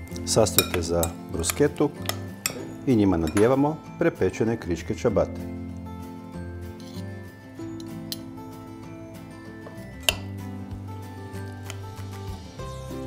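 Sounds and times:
background music: 0:00.0 - 0:13.0
metal spoons clinking on glass bowl: 0:00.1 - 0:03.8, 0:07.7 - 0:08.4, 0:09.6 - 0:10.4.

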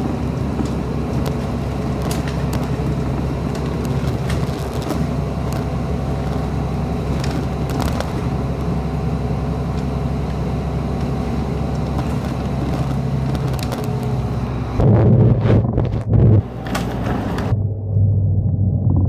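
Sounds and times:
bus engine running: 0:00.0 - 0:19.0
clicks and rattles: 0:00.5 - 0:08.3, 0:11.0 - 0:14.2.

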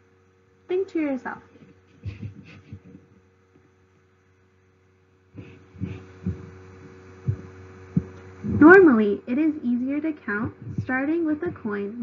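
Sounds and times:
low electrical hum: 0:00.0 - 0:12.0
soft low thumps: 0:01.5 - 0:03.2, 0:05.4 - 0:12.0.

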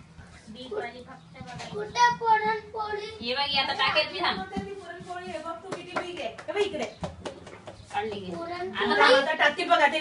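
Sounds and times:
people talking: 0:00.4 - 0:07.0, 0:07.9 - 0:10.0.

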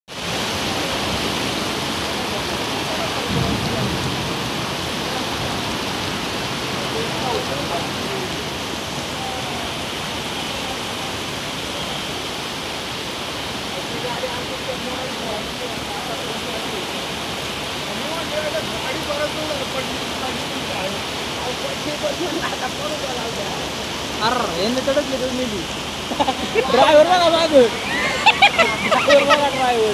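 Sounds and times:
floodwater rushing: 0:00.1 - 0:29.9
heavy rain: 0:00.1 - 0:29.9
faint voices: 0:00.5 - 0:29.9.

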